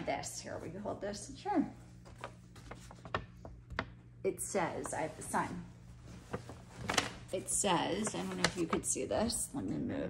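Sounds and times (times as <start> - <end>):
paper crackling: 1.9 - 4.0, 4.7 - 9.4.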